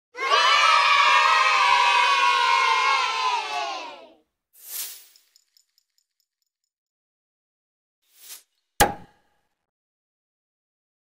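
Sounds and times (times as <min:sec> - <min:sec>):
children cheering and shouting: 0:00.1 - 0:04.2.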